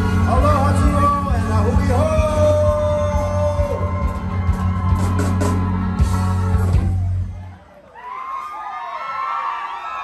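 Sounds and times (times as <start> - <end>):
heavy bass line: 0.0 - 7.5
live band through pa: 0.0 - 9.2.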